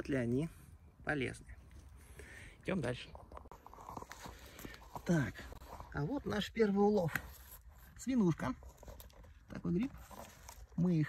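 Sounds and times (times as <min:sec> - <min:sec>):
footsteps crunching through dry leaves: 0:03.5 - 0:08.0.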